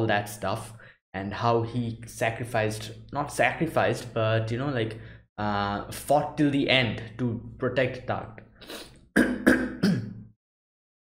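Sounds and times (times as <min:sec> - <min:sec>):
man clearing his throat: 0:09.2 - 0:10.3.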